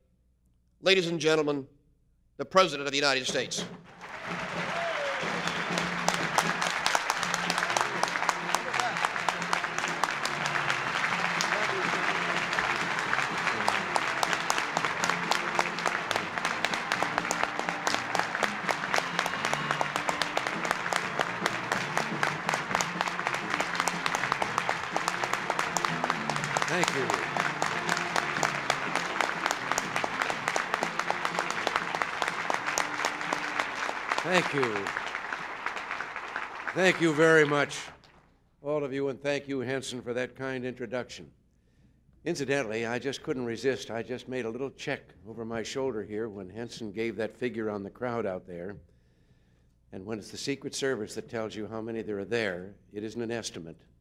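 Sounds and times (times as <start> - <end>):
audience clapping: 3.1 - 38.3
music playing: 3.3 - 37.9.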